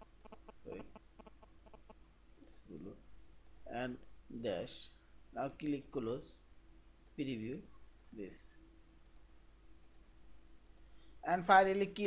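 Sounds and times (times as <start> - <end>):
faint steady hum: 0.0 - 12.0
computer mouse clicks: 9.0 - 10.9.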